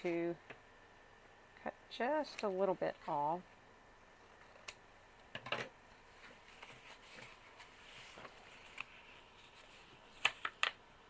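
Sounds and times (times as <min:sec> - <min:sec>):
paper rustling: 0:06.2 - 0:10.6.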